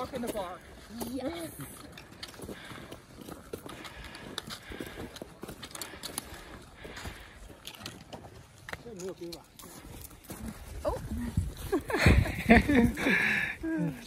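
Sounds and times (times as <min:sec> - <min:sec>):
footsteps crunching on snow: 0:00.0 - 0:12.0.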